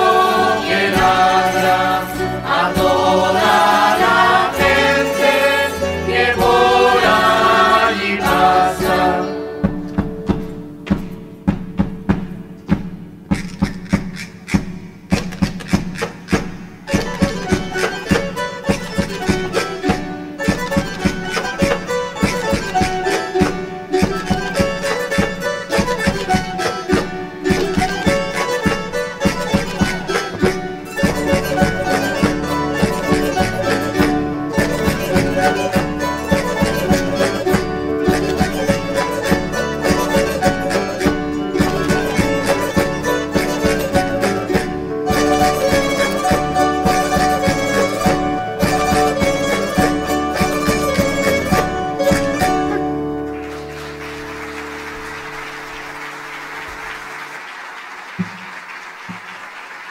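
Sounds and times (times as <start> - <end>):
folk string ensemble playing dance tune: 0.0 - 57.4.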